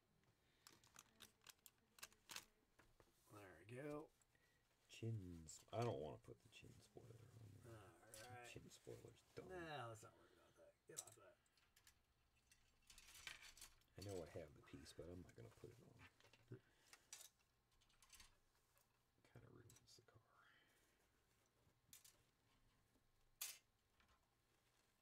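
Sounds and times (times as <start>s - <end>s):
plastic parts clicking: 0.6s - 2.5s.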